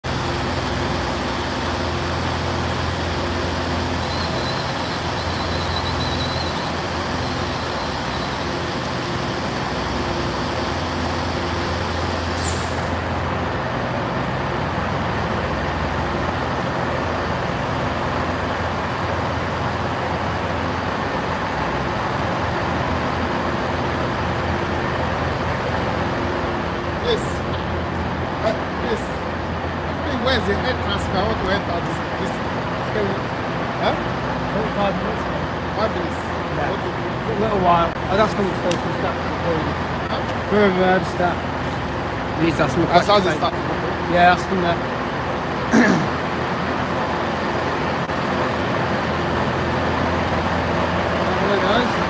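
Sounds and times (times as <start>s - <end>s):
diesel train engines droning: 0.0s - 52.0s
high squeal: 3.0s - 11.2s, 12.2s - 13.0s.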